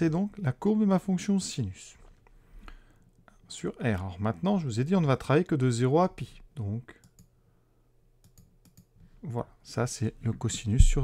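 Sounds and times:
computer mouse clicks: 0:07.0 - 0:07.3, 0:08.2 - 0:08.9.

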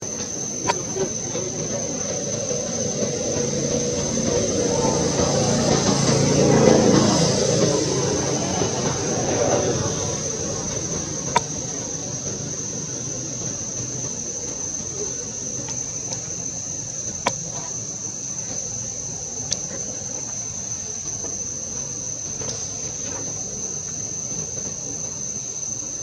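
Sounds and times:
insect chorus drone: 0:00.0 - 0:26.0.

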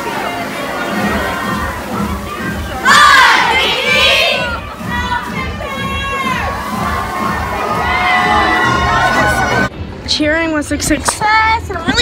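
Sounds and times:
girls shouting and cheering: 0:00.4 - 0:09.7.

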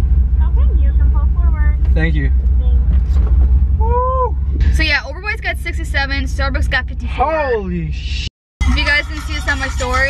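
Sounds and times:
car engine and road rumble: 0:00.0 - 0:10.0
voiced ooh sound: 0:03.8 - 0:04.4
woman talking: 0:04.7 - 0:07.0, 0:08.6 - 0:10.0.

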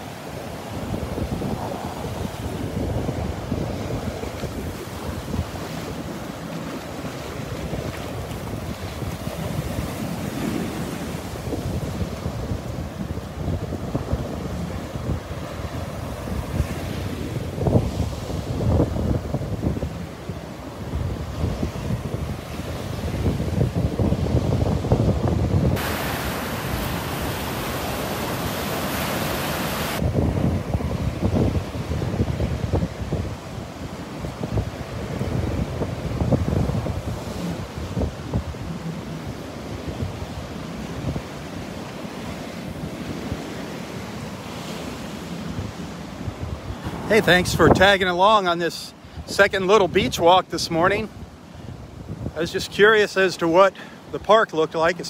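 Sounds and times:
wind buffeting microphone: 0:00.0 - 0:52.6
surf breaking on beach: 0:00.0 - 0:55.0.

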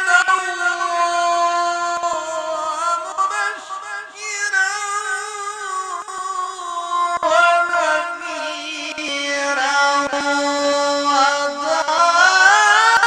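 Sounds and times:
man reciting in melodic chant: 0:00.0 - 0:13.0.

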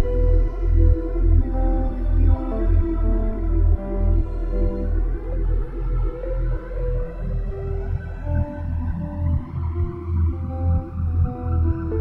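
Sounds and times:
ambient synth music: 0:00.0 - 0:12.0.

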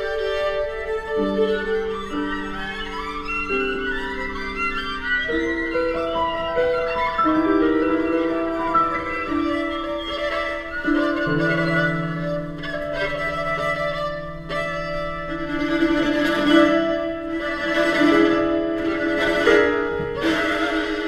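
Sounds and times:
strings holding bowed notes: 0:00.0 - 0:21.0.

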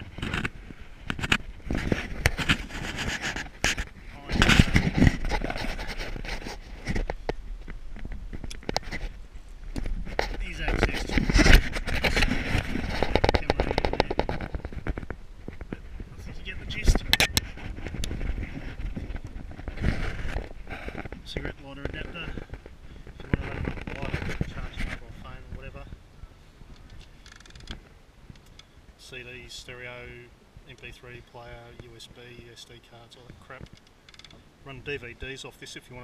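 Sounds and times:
camera handling noise: 0:00.0 - 0:09.1, 0:26.7 - 0:27.8.

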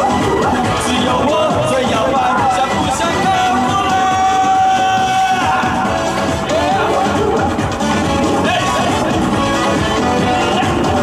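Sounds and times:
upbeat pop song over sound system: 0:00.0 - 0:11.0.

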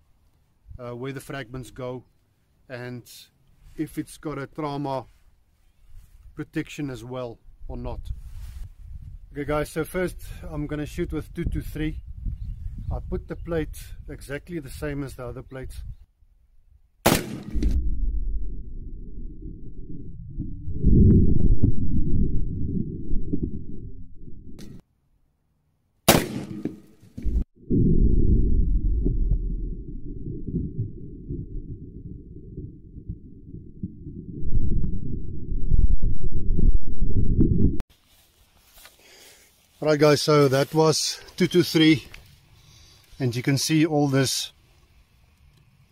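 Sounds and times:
rifle shots: 0:17.0 - 0:17.8, 0:26.1 - 0:26.9
muffled low rumble: 0:17.4 - 0:24.8, 0:27.2 - 0:37.8.

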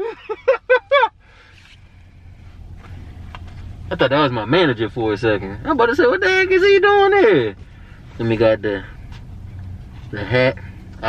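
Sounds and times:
man laughing: 0:00.0 - 0:01.2
vehicle approaching rumble: 0:00.0 - 0:11.0.

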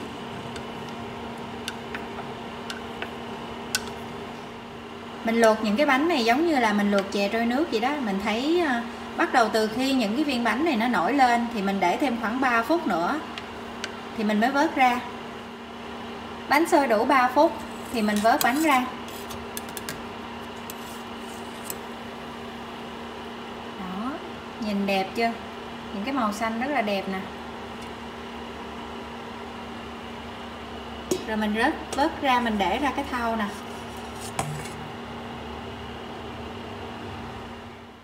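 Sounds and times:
water boiling in a pot: 0:00.0 - 0:16.0
low kitchen hum: 0:00.0 - 0:38.0.

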